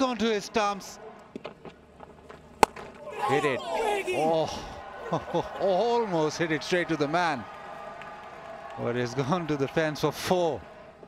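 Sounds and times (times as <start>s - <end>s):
faint stadium ambience: 0.0s - 11.0s
cricket bat striking ball: 2.6s - 3.0s.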